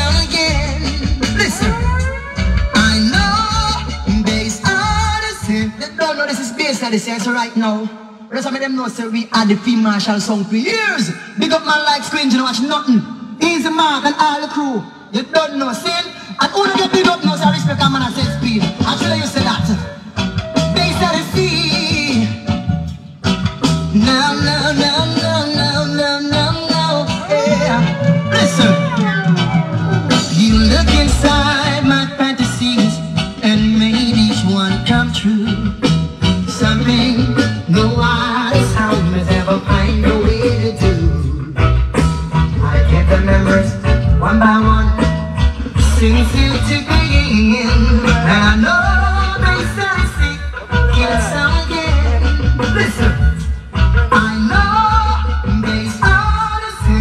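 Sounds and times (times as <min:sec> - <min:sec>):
song with lead singer: 0:00.0 - 0:08.3, 0:15.8 - 0:57.0.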